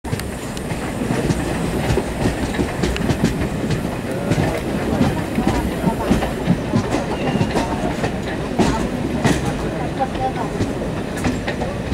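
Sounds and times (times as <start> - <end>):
rumble of wheels on rail: 0.0 - 11.9
wheels clattering over track: 0.1 - 11.9.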